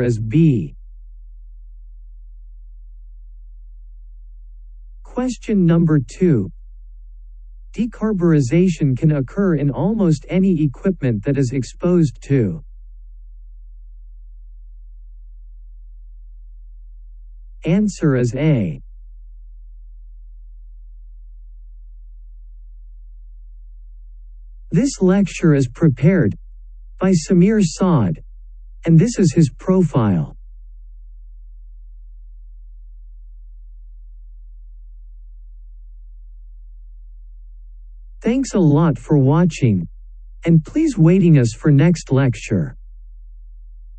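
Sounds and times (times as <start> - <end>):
steady low hum: 0.0 - 43.9.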